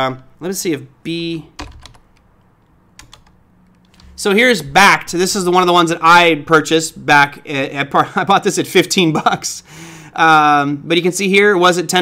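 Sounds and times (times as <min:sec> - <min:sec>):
keyboard keystrokes: 0:01.6 - 0:02.3, 0:03.0 - 0:04.1.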